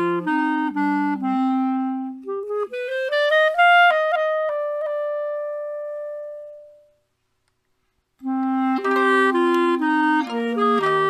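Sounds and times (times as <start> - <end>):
held instrumental note: 8.2 - 11.0.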